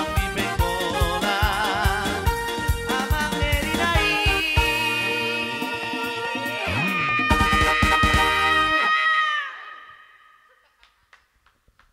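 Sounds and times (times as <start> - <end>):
electronic keyboard chord: 0.0 - 7.0.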